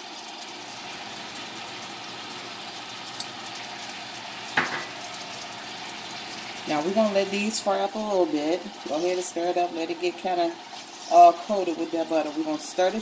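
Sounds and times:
food sizzling in a saucepan: 0:00.0 - 0:13.0
brief knock: 0:04.6 - 0:04.9.

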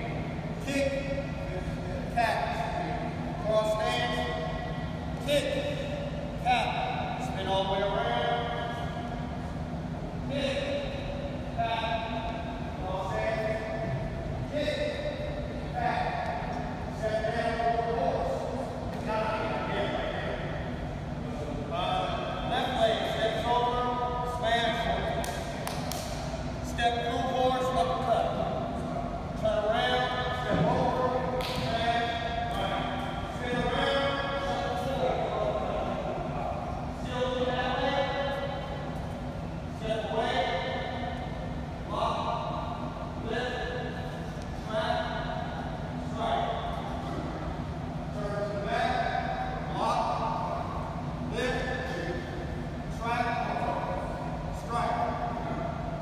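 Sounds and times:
echoing voices: 0:00.0 - 0:56.0
steady low hum: 0:00.0 - 0:56.0.

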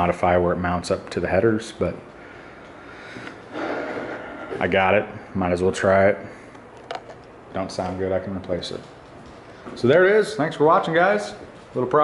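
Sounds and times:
breath out through nose: 0:02.4 - 0:04.6.

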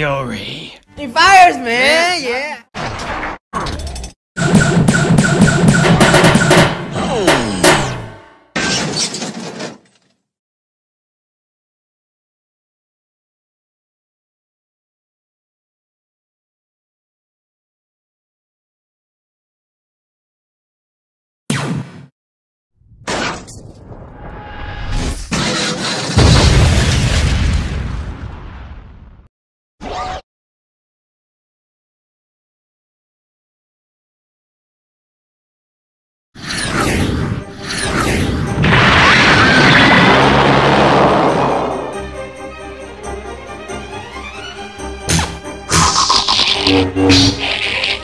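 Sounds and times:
music: 0:00.0 - 0:02.3, 0:04.4 - 0:08.5, 0:36.4 - 0:39.0, 0:40.1 - 0:48.0
deep rumbling explosion: 0:26.2 - 0:29.3.

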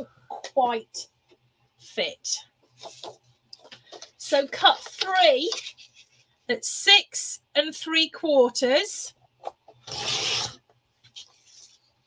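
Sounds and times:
blade rasping through cardstock: 0:09.9 - 0:10.6
paper trimmer blade sliding: 0:09.9 - 0:10.6.

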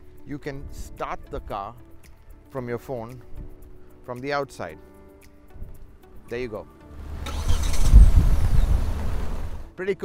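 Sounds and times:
car engine starting: 0:06.9 - 0:09.7.

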